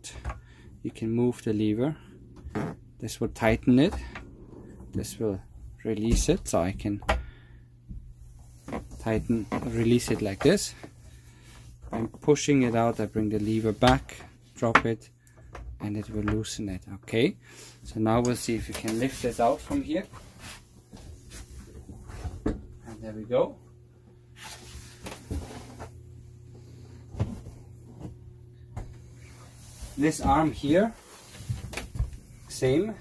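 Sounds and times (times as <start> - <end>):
handling and rubbing of tabletop: 11.4 - 14.1, 24.4 - 26.0, 29.0 - 32.8.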